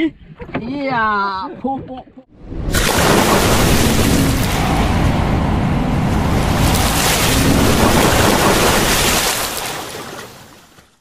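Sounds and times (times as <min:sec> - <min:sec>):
big water splash: 0:02.4 - 0:10.8
rushing water surge: 0:02.4 - 0:10.8.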